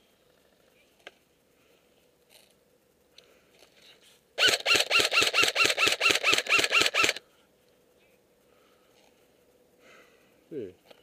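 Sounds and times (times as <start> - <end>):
airsoft gun firing rapid shots: 4.4 - 7.2.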